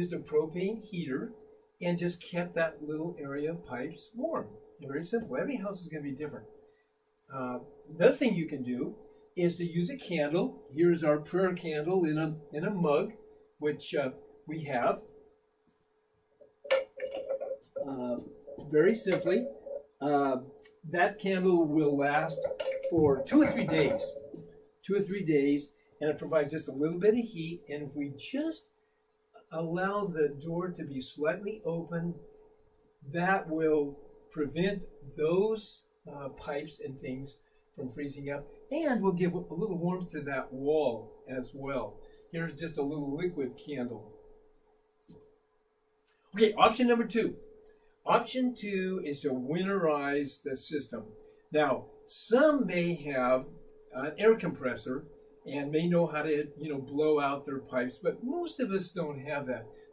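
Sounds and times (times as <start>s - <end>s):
man's voice: 0.0s - 6.4s, 17.8s - 28.6s, 46.4s - 47.3s, 51.6s - 59.6s
faint steady hum: 0.0s - 59.9s
glass jar knocks: 16.7s - 17.7s, 22.4s - 24.2s
glass jar clinking: 16.7s - 17.9s, 22.3s - 24.4s.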